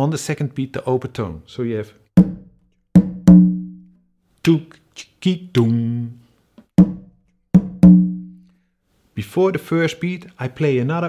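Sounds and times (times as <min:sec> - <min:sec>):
conga drum played by hand: 0:03.0 - 0:03.7, 0:07.6 - 0:08.2.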